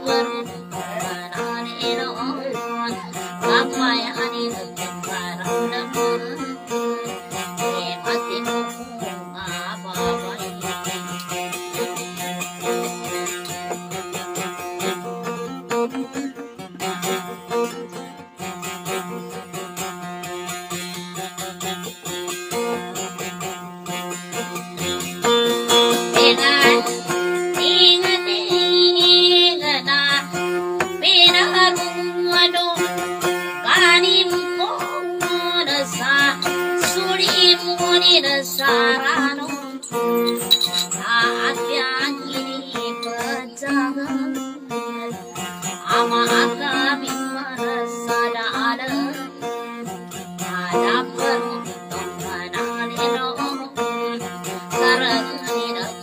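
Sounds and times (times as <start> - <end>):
acoustic guitar: 0.0 - 56.0
woman singing with wavering pitch: 0.0 - 56.0.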